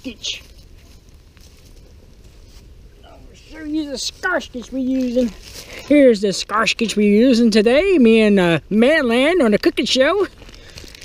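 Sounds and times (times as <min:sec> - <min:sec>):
campfire burning: 0:00.0 - 0:11.0.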